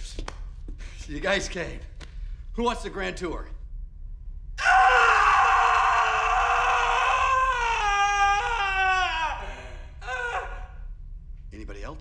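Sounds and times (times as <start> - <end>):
man screaming: 4.6 - 10.7.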